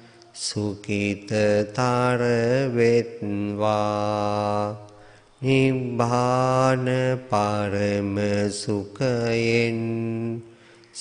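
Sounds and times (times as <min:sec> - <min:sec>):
man chanting: 0:00.3 - 0:11.0.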